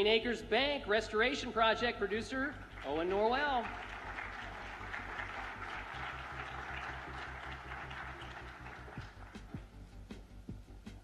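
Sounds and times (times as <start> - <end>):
audience applauding: 2.7 - 9.7.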